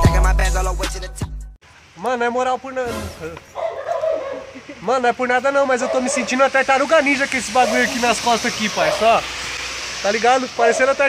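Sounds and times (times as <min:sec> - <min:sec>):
dog whining: 0:03.6 - 0:04.6.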